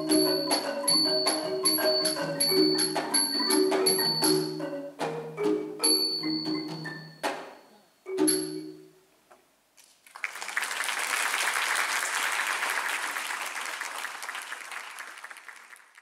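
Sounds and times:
wooden xylophone note ringing: 0:00.0 - 0:09.0
applause: 0:09.8 - 0:16.0.

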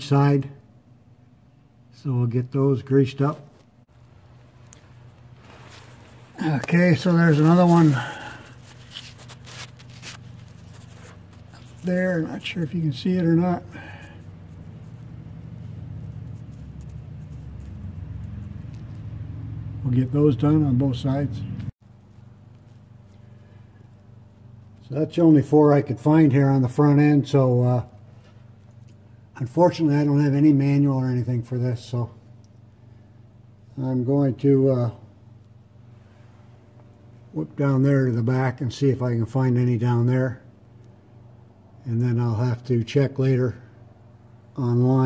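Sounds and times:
steady low hum: 0:00.0 - 0:45.0.

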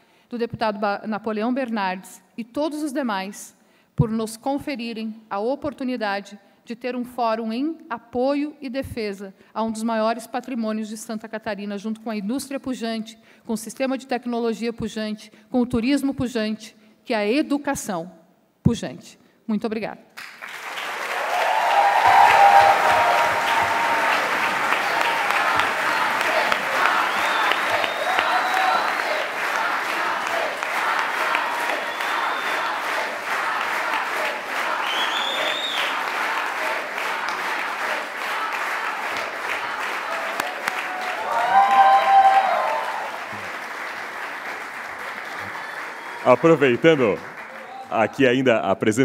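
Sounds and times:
audience applauding: 0:20.2 - 0:48.3.

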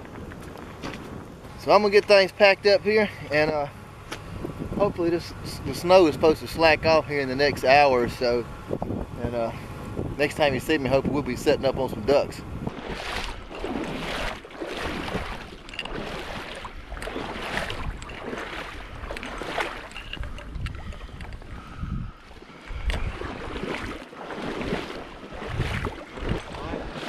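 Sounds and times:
water sloshing from wading: 0:12.0 - 0:27.0.

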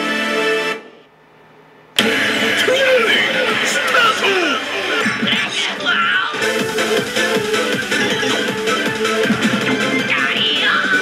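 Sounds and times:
slot machine music: 0:02.0 - 0:11.0.

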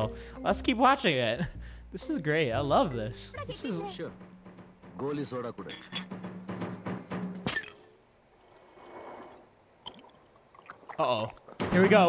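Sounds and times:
liquid gurgling in glass bottle: 0:08.4 - 0:11.6.

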